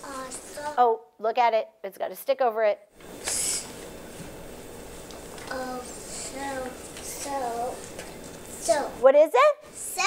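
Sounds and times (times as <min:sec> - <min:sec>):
classroom room noise: 0:03.0 - 0:04.4, 0:05.1 - 0:10.0.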